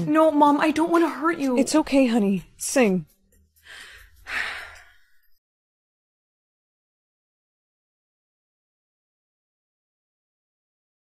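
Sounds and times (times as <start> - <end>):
woman breathing out: 3.7 - 5.3.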